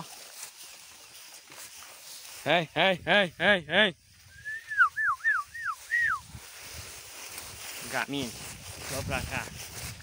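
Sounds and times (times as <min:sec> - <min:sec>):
person whistling falling whistles: 0:04.3 - 0:06.3.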